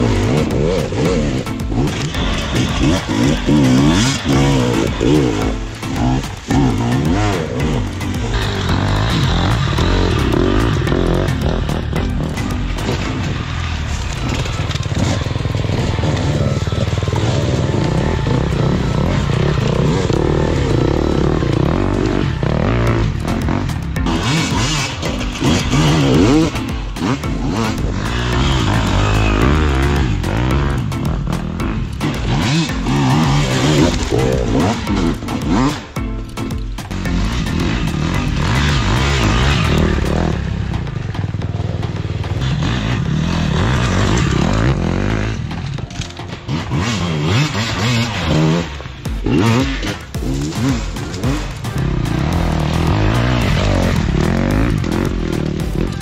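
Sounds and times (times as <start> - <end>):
dirt bike engines revving: 0.0 - 56.0
music playing: 0.0 - 56.0.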